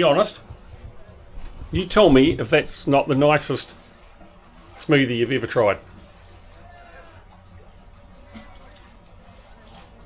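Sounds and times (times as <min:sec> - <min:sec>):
faint indistinct voices: 0:00.0 - 0:10.0
steady low hum: 0:00.0 - 0:10.0.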